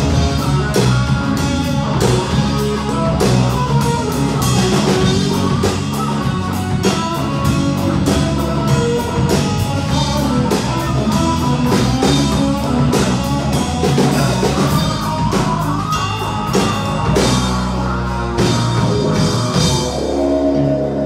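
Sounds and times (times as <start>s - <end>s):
country rock band playing: 0.0s - 21.0s.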